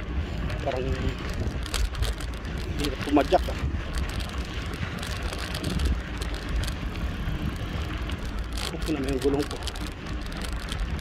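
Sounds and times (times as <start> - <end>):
bicycle rolling over sandy ground: 0.0 - 11.0
small clicks from bike: 0.0 - 11.0
wind rumbling on microphone: 0.0 - 11.0.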